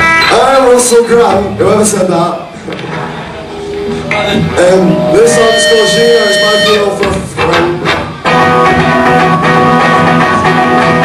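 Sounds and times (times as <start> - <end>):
amplified rock guitars: 0.0 - 1.6, 3.6 - 11.0
singer speaking: 4.1 - 7.8.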